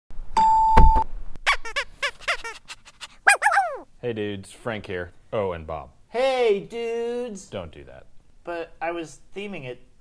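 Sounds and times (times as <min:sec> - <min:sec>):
dog yapping: 0:02.2 - 0:03.9
dog whining: 0:02.3 - 0:03.9.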